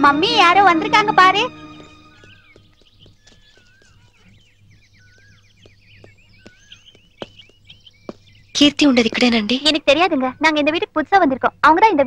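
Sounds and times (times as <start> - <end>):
birds chirping and warbling: 0.0 - 12.0.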